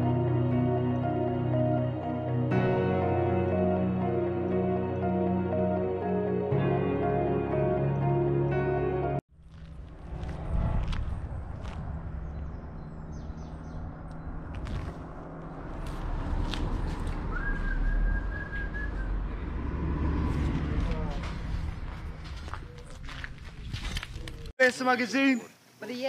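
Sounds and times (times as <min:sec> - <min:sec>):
footsteps: 0:09.4 - 0:12.4, 0:14.4 - 0:17.8, 0:20.2 - 0:24.5
wind rumble on microphone: 0:09.5 - 0:24.5.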